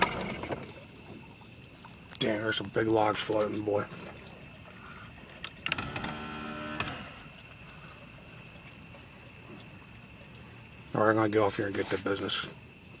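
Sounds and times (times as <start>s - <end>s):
insect chirring: 0.0s - 13.0s
electric trolling motor hum: 5.7s - 7.4s.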